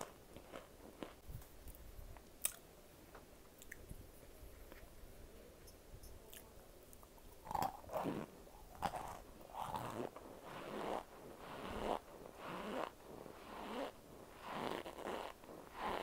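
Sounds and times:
person crunching food: 0.0 - 1.2, 7.4 - 11.0
person chewing: 0.0 - 1.8, 7.4 - 16.0.

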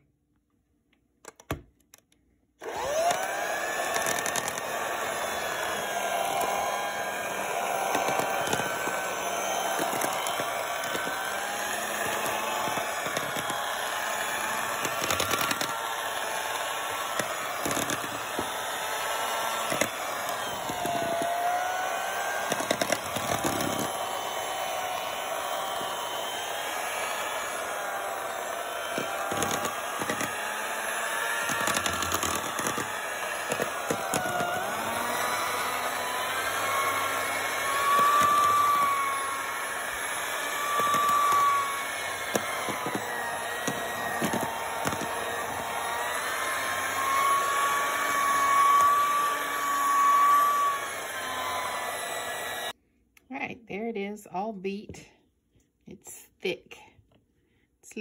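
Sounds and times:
beaters churning batter in bowl: 2.6 - 52.7
electric hand mixer running: 2.6 - 52.8.

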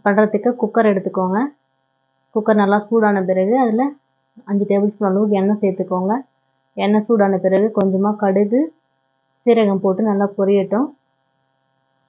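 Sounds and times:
woman talking: 0.0 - 1.5, 2.4 - 6.2, 6.8 - 8.7, 9.5 - 10.9
electrical hum: 0.0 - 12.0.

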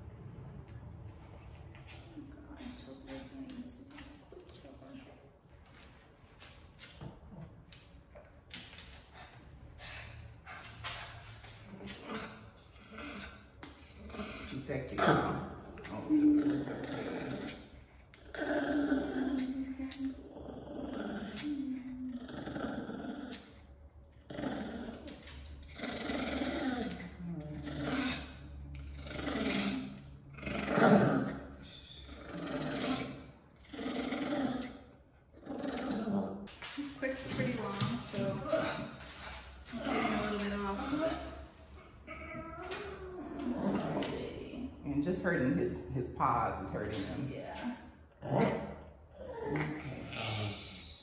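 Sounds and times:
dog growling and whining: 11.5 - 36.5, 38.1 - 44.4, 48.1 - 51.0.

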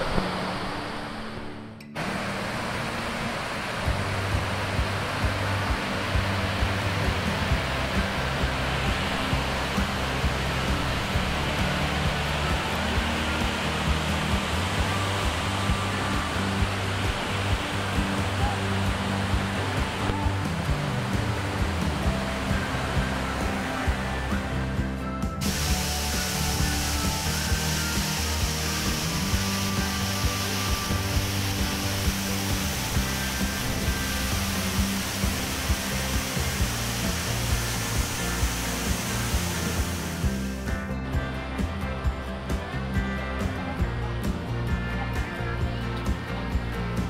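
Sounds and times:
waterfall roaring: 0.0 - 40.7
background music with beat: 3.8 - 47.0.

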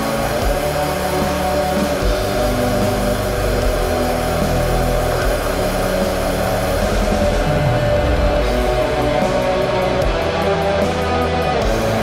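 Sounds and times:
distorted guitar: 0.0 - 12.0
rumbling bass and drums: 0.0 - 12.0.

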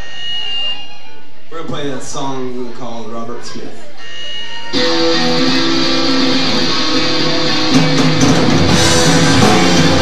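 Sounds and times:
electric guitars strumming chords: 4.8 - 10.0
drum hit: 7.2 - 10.0.

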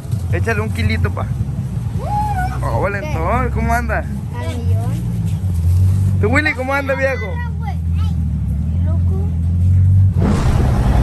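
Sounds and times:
low mechanical engine hum: 0.0 - 11.0.

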